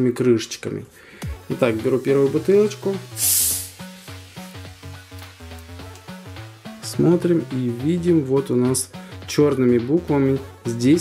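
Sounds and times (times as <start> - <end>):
background music: 0.9 - 11.0
bottle cap opening hiss: 2.7 - 6.2.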